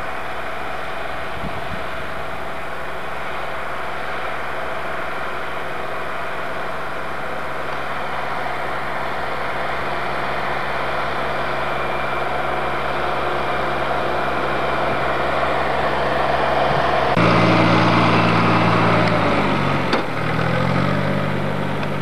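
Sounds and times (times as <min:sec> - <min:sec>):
small tractor engine running: 0:00.0 - 0:22.0.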